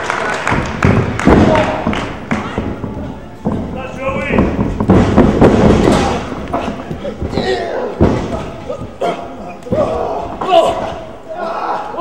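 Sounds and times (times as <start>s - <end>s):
wrestlers thudding on ring canvas: 0.3s - 11.2s.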